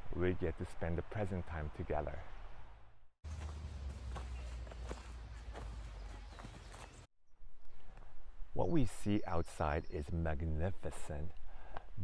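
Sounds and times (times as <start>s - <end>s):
footsteps crunching on dirt: 3.2s - 7.1s.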